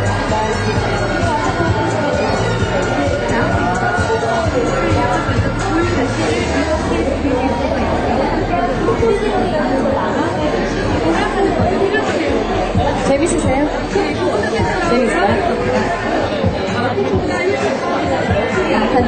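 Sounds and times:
crowd chatter in a hall: 0.0 - 19.0.

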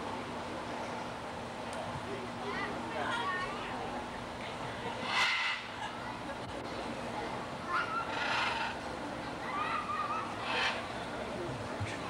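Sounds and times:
cockatoo squawking: 7.7 - 8.8, 10.0 - 10.9.

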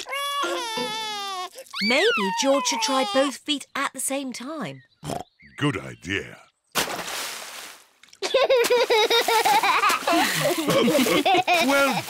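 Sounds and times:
splashing water: 0.0 - 2.6, 6.8 - 12.0
cartoon child giggling: 8.2 - 12.0.

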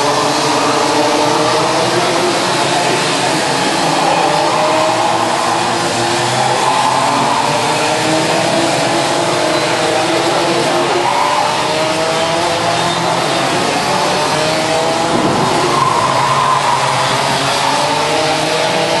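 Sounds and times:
racing kart engines buzzing: 0.0 - 19.0.

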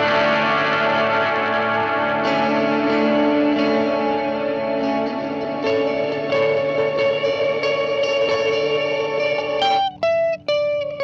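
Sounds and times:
electric guitar chords ringing: 0.0 - 11.0.

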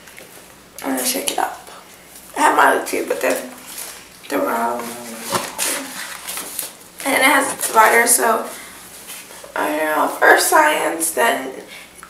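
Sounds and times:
faint paper shuffling: 3.3 - 9.6
papers rustling: 3.5 - 8.1.

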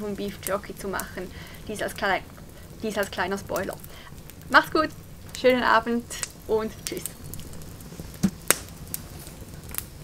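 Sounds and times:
campfire crackling: 0.0 - 10.0
low rush of flames: 0.0 - 10.0
sharp pops of fire: 0.4 - 10.0.

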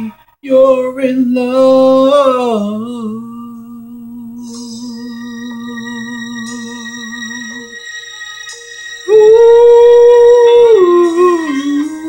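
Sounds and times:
man singing long note: 0.0 - 7.8, 9.1 - 12.0.

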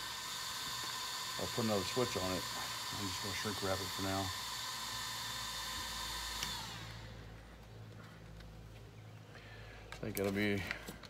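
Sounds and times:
small electric motor whirring: 0.0 - 7.4.

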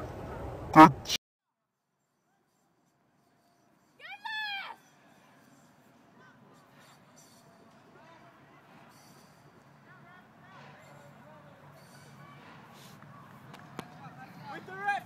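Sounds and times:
high-pitched shout: 4.0 - 4.8
faint distant voices: 4.0 - 15.0.

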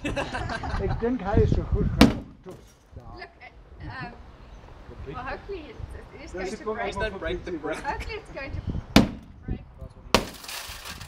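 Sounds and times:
brick striking car window: 2.0 - 2.4, 9.0 - 9.3, 10.2 - 10.4
glass breaking: 10.2 - 11.0.

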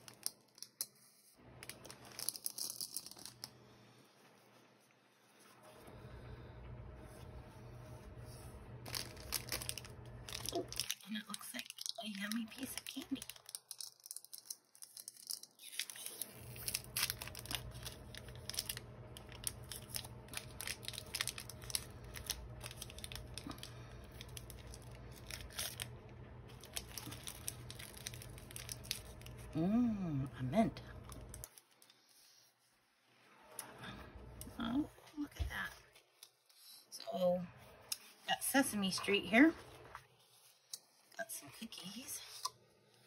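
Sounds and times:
paper rustling and crinkling: 8.2 - 25.9, 26.5 - 29.5.

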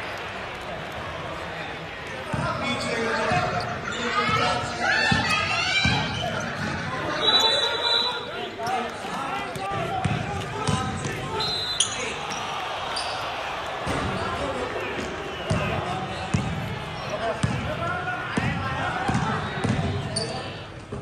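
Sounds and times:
players' voices and calls: 0.0 - 21.0
basketball bouncing on gym floor: 9.6 - 11.2, 18.4 - 19.9.

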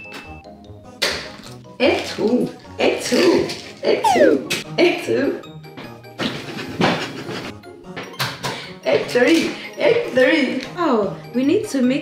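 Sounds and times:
background music: 0.4 - 12.0.

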